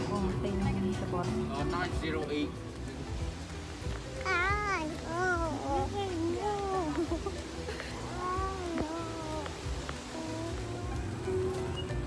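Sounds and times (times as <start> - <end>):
baby vocal sound with gliding pitch: 8.1 - 11.2.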